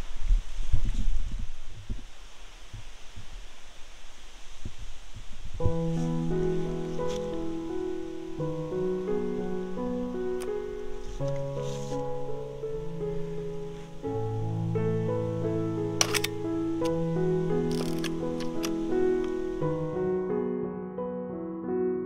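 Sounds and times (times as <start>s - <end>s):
slow keyboard chords music: 5.6s - 22.0s
film camera mechanical clicks: 16.0s - 17.0s, 17.7s - 18.8s.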